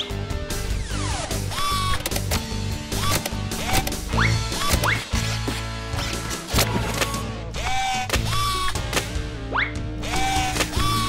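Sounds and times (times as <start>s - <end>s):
background music: 0.0s - 11.0s
plastic toy parts clicking: 1.8s - 4.0s.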